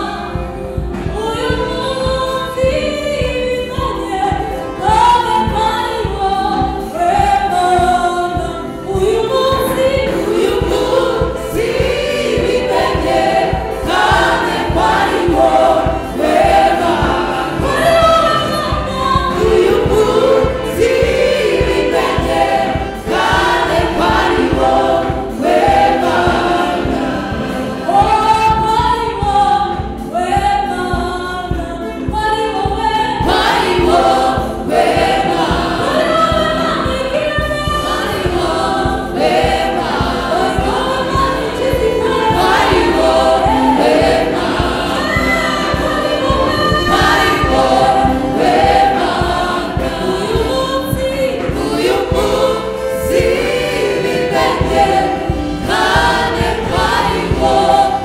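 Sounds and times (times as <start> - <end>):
gospel choir singing: 0.0 - 58.0.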